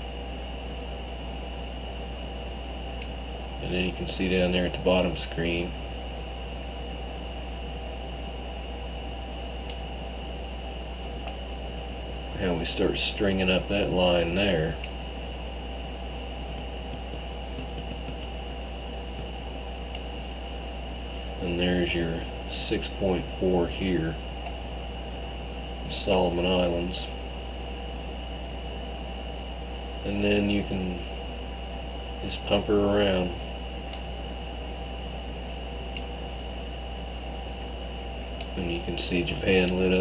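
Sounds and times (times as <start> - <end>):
low electrical hum: 0.0 - 40.0
thin high whine: 0.0 - 40.0.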